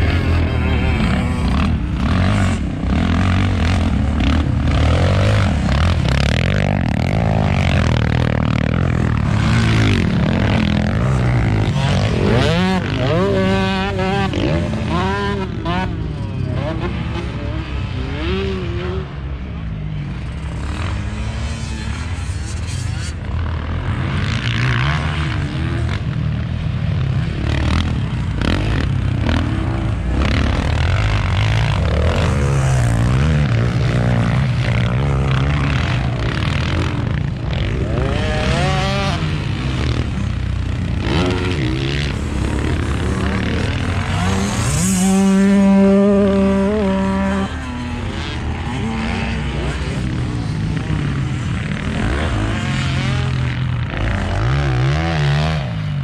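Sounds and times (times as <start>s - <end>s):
off-road engines revving: 0.0s - 56.0s.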